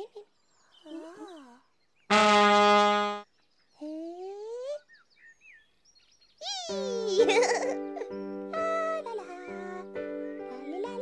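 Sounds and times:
loud brass note: 2.1 - 3.2.

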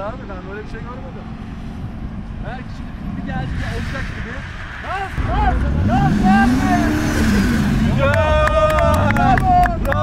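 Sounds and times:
car engine revving: 2.6 - 10.0.

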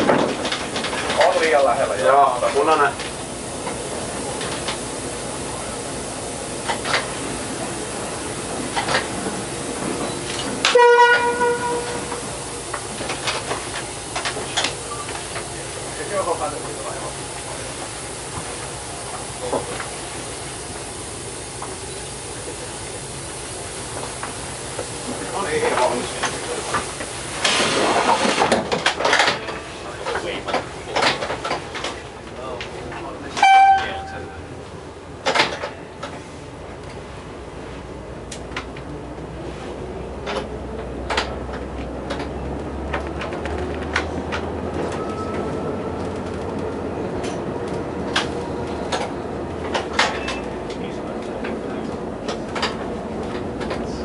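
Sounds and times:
diesel railcar running on track: 0.0 - 54.0
train horn blast: 10.6 - 12.5, 33.4 - 34.5
short higher horn toot: 10.7 - 12.3, 33.4 - 34.5.

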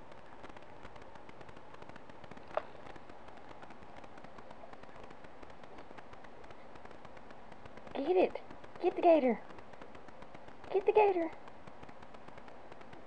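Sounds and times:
microphone hiss: 0.0 - 13.0.

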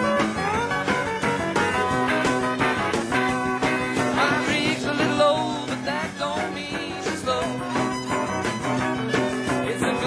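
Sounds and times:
country-rock band playing live: 0.0 - 10.0
fiddle: 0.0 - 10.0.

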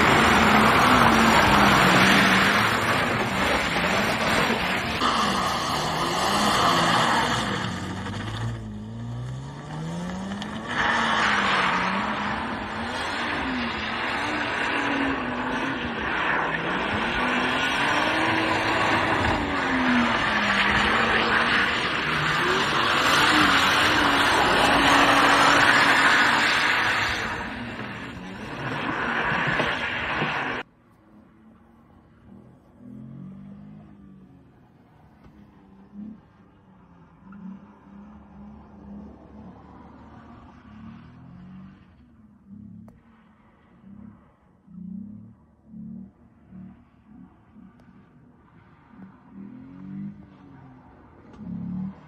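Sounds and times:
tyres sliding on tarmac: 0.0 - 31.1
car engine revving: 0.0 - 52.0.

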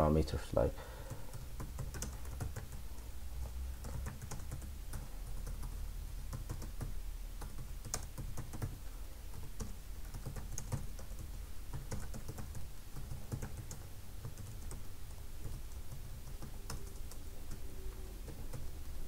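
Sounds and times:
low steady hum: 0.0 - 19.0
keyboard typing clicks: 1.1 - 2.8, 3.8 - 18.7.

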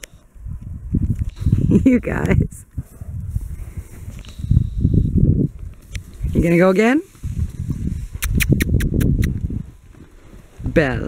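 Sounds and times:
horse hooves trotting on dirt: 5.2 - 11.0
sharp high clicks: 8.2 - 9.4.

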